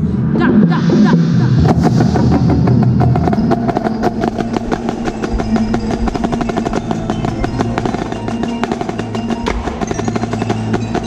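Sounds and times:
sustained pitched tones: 0:00.0 - 0:11.0
drumline playing: 0:00.5 - 0:11.0
marching snare drum: 0:01.6 - 0:11.0.

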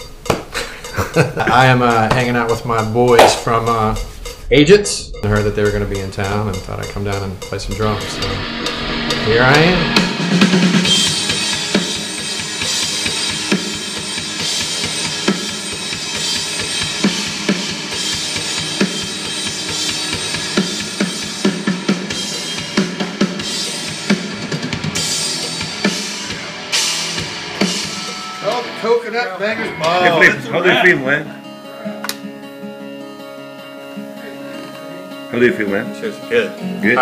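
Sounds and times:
rock drum kit playing: 0:00.0 - 0:37.0.

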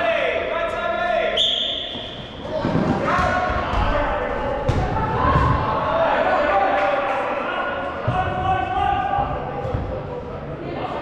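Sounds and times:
referee's whistle blast: 0:01.4 - 0:02.2
feet and balls thudding: 0:01.8 - 0:05.9
players shouting: 0:01.9 - 0:09.9.

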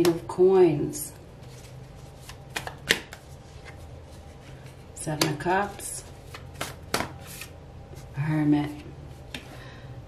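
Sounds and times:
playing cards snapping and sliding: 0:01.5 - 0:03.8, 0:06.2 - 0:07.5.

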